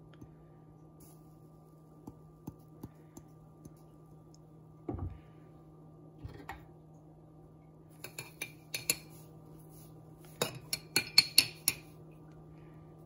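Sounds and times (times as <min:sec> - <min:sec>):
metal spoon clinking on glass jar: 0:10.4 - 0:11.9.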